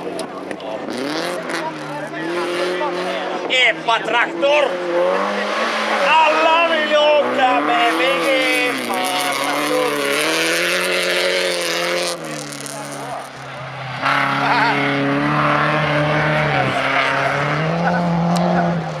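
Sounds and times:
race car engines revving: 0:00.0 - 0:19.0.

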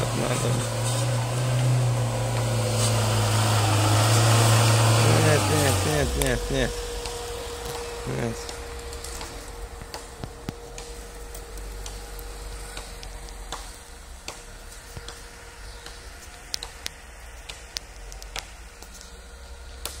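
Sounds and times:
engine low rumble: 0:00.0 - 0:20.0
sharp clicks and snaps: 0:15.8 - 0:19.1.

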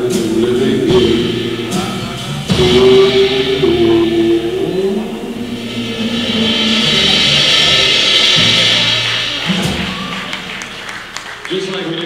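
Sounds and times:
sustained sung note: 0:00.0 - 0:09.8
band chord ringing: 0:00.0 - 0:11.7
audience applause: 0:06.1 - 0:12.0.

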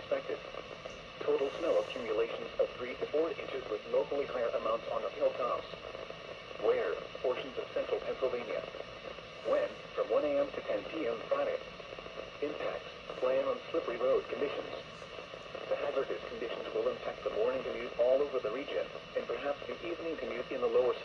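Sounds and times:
radio voice through small speaker: 0:00.0 - 0:05.8, 0:06.6 - 0:08.8, 0:09.4 - 0:11.6, 0:12.3 - 0:21.0.

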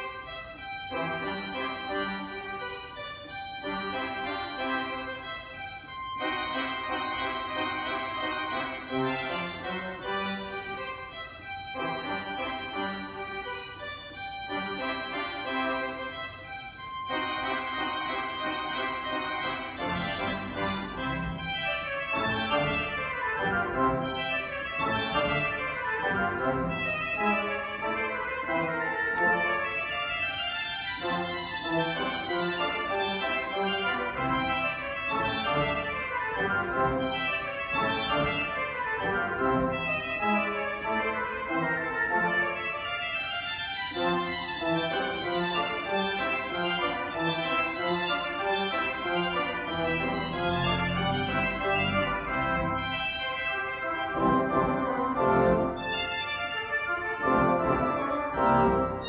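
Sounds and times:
pipe organ playing classical piece: 0:00.0 - 0:59.0.

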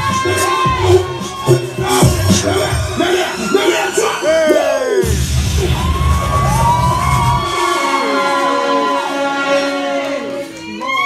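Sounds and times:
person singing: 0:00.0 - 0:05.1
heavy bass beat: 0:00.0 - 0:07.8
loud music: 0:00.0 - 0:11.0.

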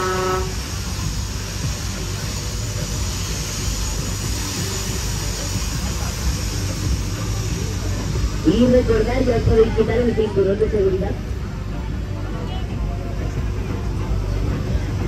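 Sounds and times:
ride signal horn toot: 0:00.0 - 0:00.5
ride machinery rumble and hiss: 0:00.0 - 0:15.0.

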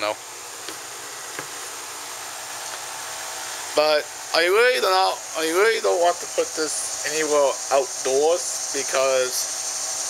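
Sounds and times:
air conditioner hiss: 0:00.0 - 0:10.0
cicadas droning: 0:00.0 - 0:10.0.

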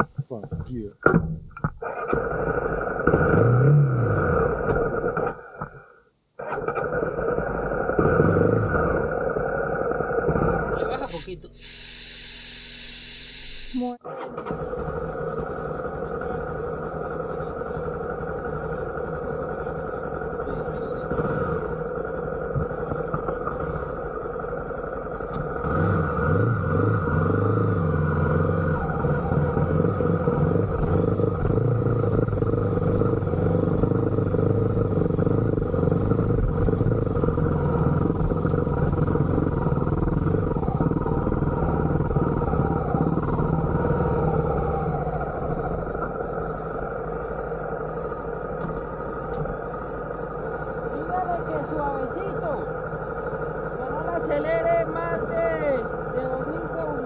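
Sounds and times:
motorcycle engine running: 0:07.2 - 0:14.0, 0:14.7 - 0:57.0
burst of hiss: 0:11.0 - 0:14.0.

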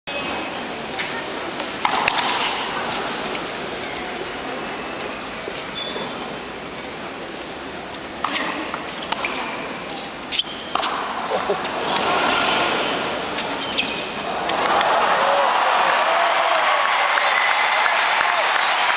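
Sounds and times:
crowd chatter: 0:00.1 - 0:16.6.

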